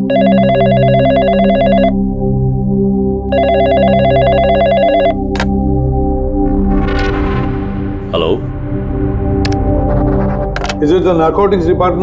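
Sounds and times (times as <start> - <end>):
telephone ringing: 0.0 - 2.0, 3.3 - 5.3.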